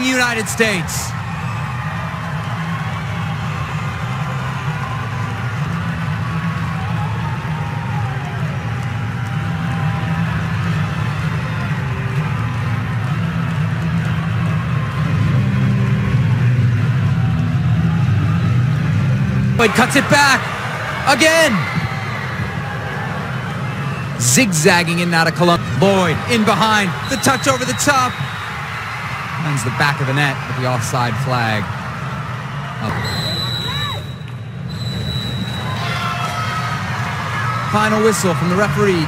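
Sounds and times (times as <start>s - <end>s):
stadium rumble: 0.0s - 39.0s.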